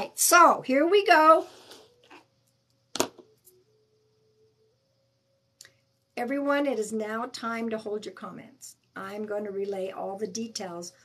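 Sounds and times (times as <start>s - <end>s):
faint steady tone shifting pitch: 0.0s - 11.0s.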